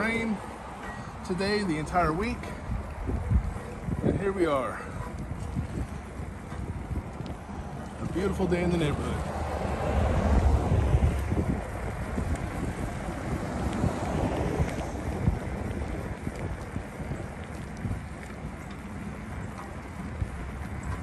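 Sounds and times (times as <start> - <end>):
bicycle clicks and rattles: 0.0 - 21.0
wind buffeting microphone: 0.0 - 21.0.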